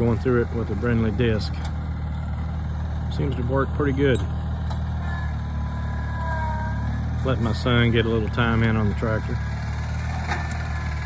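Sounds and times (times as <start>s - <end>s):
garden tractor engine running: 0.0s - 11.0s.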